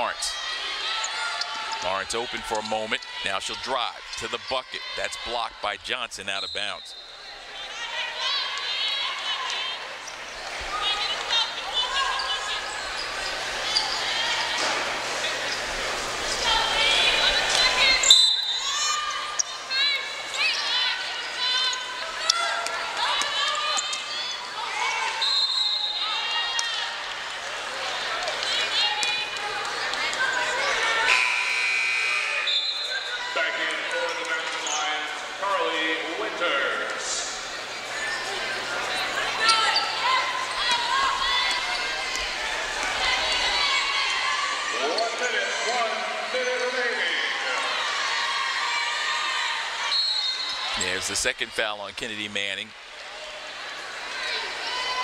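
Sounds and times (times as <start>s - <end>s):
players' voices: 0.0s - 31.4s, 32.1s - 55.0s.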